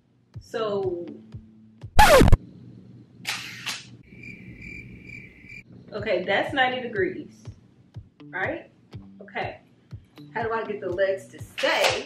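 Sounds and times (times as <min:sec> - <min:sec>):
crickets chirping effect: 0:04.0 - 0:05.6.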